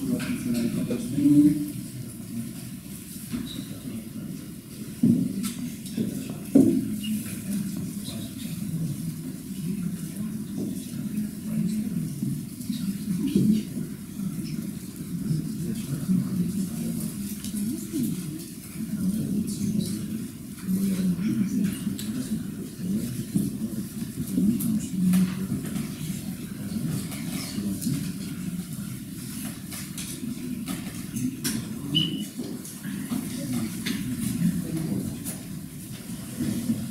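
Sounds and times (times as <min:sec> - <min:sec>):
murmur of voices: 0:00.0 - 0:36.9.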